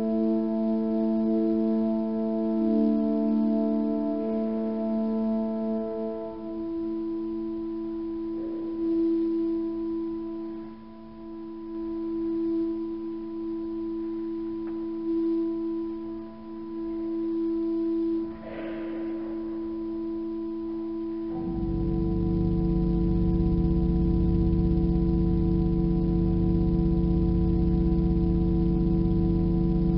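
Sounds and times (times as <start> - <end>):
pipe organ sustained chord: 0.0 - 29.9.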